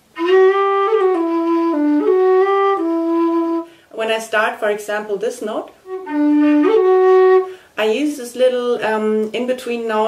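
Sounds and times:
low whistle melody: 0.1s - 3.7s, 5.9s - 7.6s.

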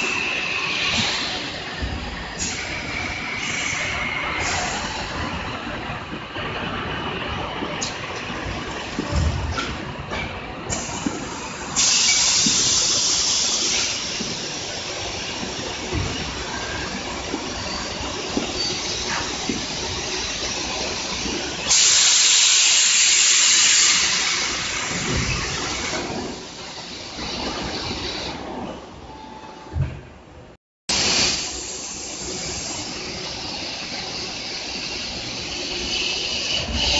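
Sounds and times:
compressed air hiss: 10.7s - 15.9s, 18.7s - 25.9s, 30.9s - 36.9s.

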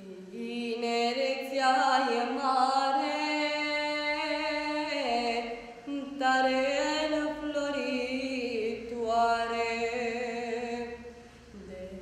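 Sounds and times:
girl singing hymn solo: 0.0s - 12.0s.

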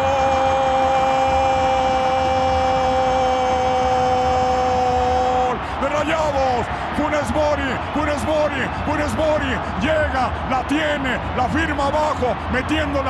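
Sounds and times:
stadium crowd noise: 0.0s - 13.0s.

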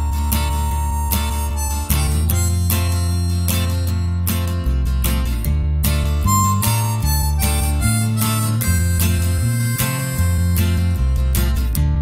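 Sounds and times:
harmonica melody: 0.0s - 4.9s, 5.9s - 11.7s
bass: 0.0s - 12.0s
strummed acoustic guitar: 0.0s - 12.0s.

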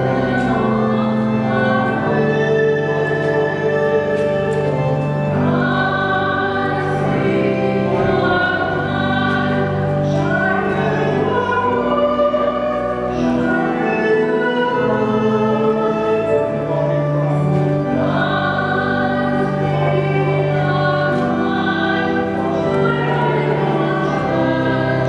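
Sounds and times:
sustained accompaniment: 0.0s - 25.0s
voices singing a hymn: 0.0s - 25.0s.

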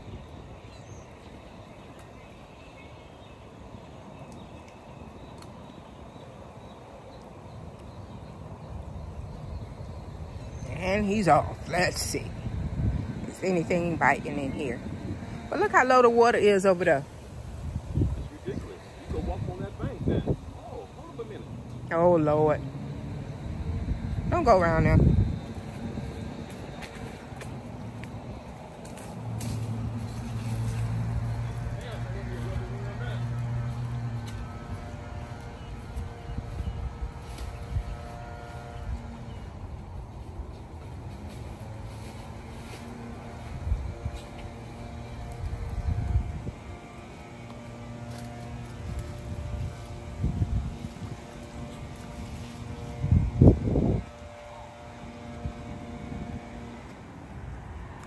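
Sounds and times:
motor humming: 3.5s - 58.0s.

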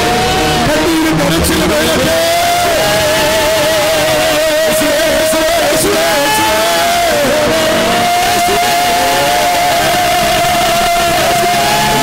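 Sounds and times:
low instrumental accompaniment: 0.0s - 12.0s
man singing long held note: 0.0s - 12.0s.

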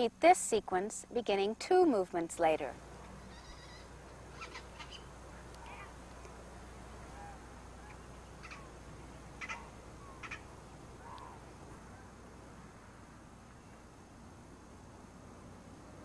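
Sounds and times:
low hum: 2.6s - 16.0s
short bird calls: 3.2s - 6.0s, 7.0s - 8.8s, 9.4s - 12.7s.

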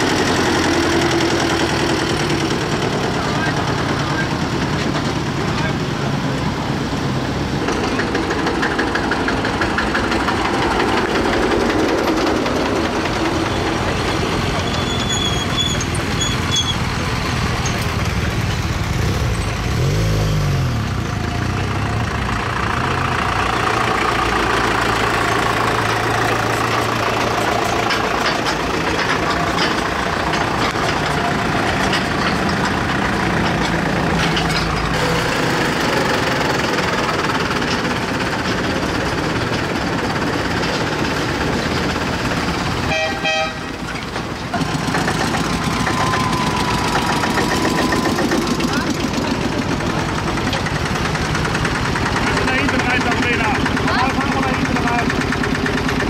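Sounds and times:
tractor engines driving past: 0.0s - 56.0s.

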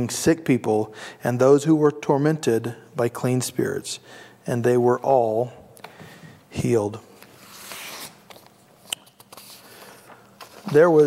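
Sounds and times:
paper sheets rustling: 7.2s - 11.0s.

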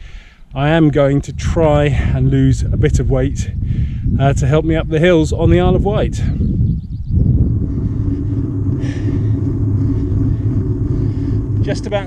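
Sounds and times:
wind buffeting microphone: 0.0s - 12.0s
bike tyres rolling on tarmac: 6.8s - 12.0s.

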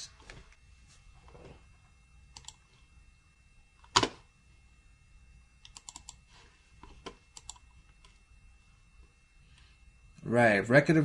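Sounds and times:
computer mouse and key clicks: 2.3s - 2.6s, 5.6s - 6.2s, 6.8s - 8.2s.

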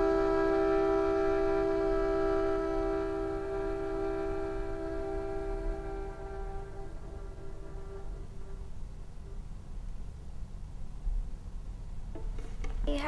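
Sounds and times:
violin bowed note: 0.0s - 9.4s.

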